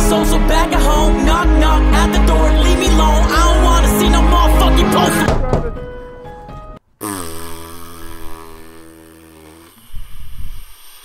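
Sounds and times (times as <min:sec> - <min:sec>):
breathy noises: 0:07.0 - 0:11.0.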